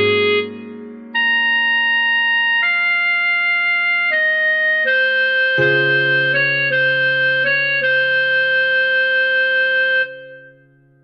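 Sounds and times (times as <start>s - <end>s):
clarinet holding long note: 0.0s - 10.7s
low sustained backing chord: 5.6s - 11.0s.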